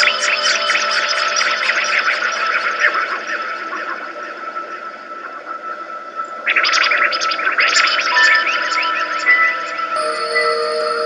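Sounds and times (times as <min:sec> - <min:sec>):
steady high tone: 0:10.0 - 0:11.0.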